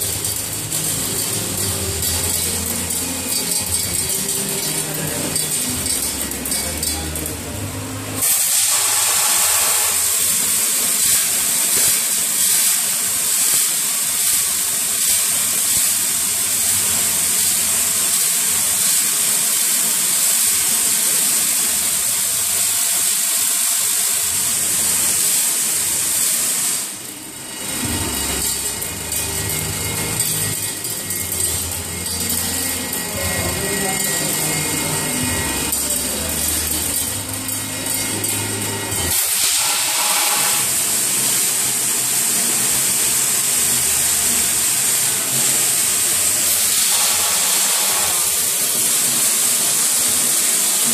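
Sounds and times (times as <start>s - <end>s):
low machine hum: 0.0s - 8.3s, 27.0s - 39.2s
packing machine hiss and rattle: 0.0s - 50.9s.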